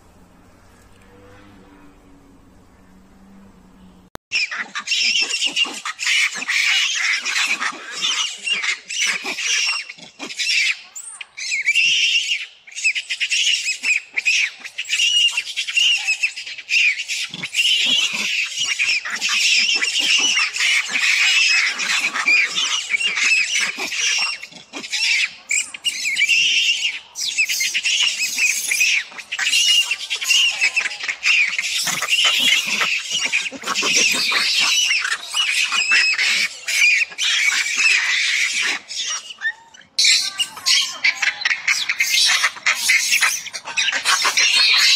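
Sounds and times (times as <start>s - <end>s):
baby monkey screaming: 4.3s - 44.9s.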